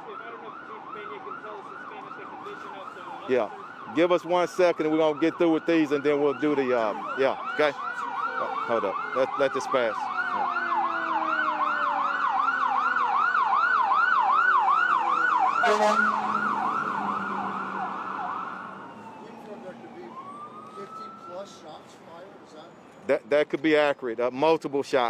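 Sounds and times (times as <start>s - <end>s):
emergency siren yelping: 0.0s - 22.0s.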